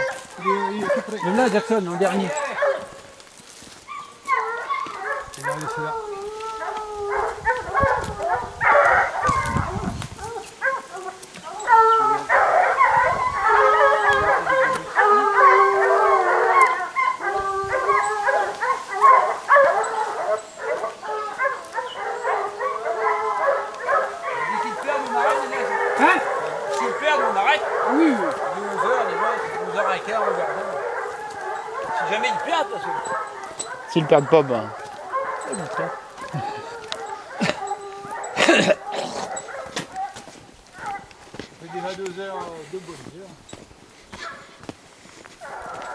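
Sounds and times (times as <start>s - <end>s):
hounds baying: 0.0s - 45.9s.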